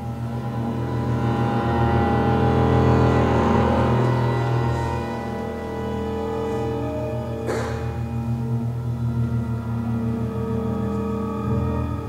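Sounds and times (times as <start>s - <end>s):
bowed cello and double bass: 0.0s - 12.0s
sustained low chord: 0.0s - 12.0s.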